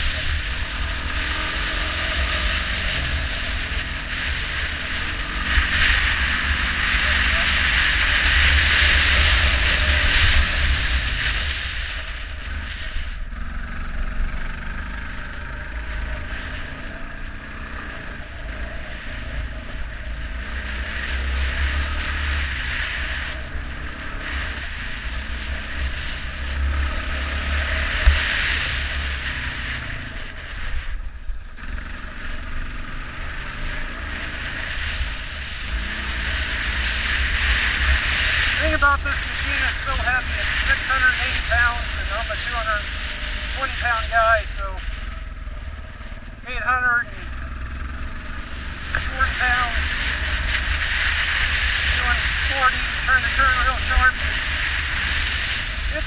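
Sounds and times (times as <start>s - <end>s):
atv engine running: 0.0s - 56.0s
wind rumble on microphone: 15.7s - 31.6s.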